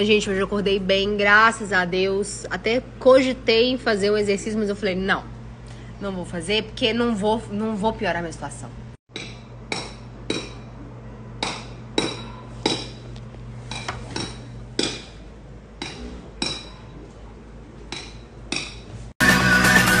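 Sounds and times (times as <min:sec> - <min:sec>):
low steady hum: 0:00.0 - 0:19.2.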